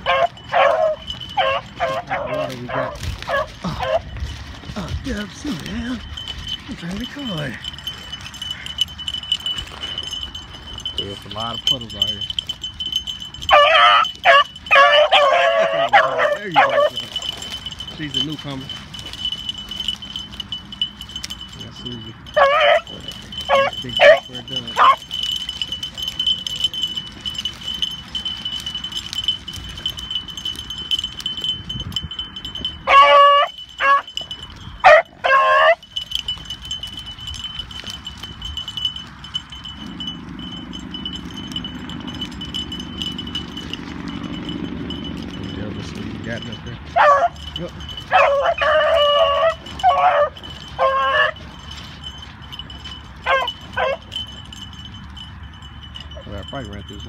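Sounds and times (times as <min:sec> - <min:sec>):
dogs baying: 0:00.0 - 0:57.0.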